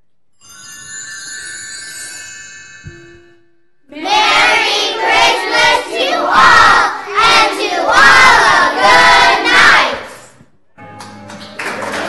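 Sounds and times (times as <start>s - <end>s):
children's voices in unison: 3.9s - 10.3s.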